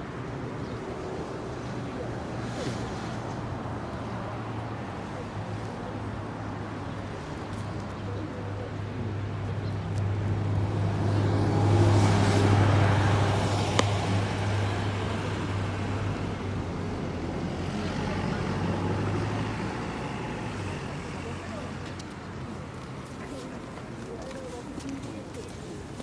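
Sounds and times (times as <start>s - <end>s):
vehicle engine humming: 3.2s - 26.0s.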